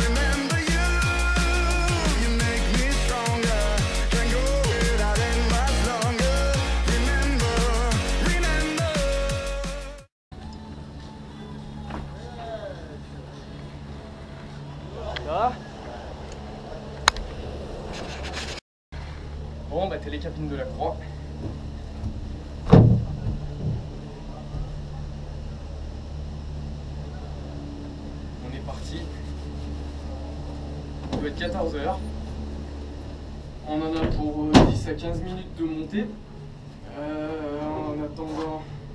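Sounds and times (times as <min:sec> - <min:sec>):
background music with a beat: 0:00.0 - 0:10.1
low hum of lift machinery: 0:19.0 - 0:38.9.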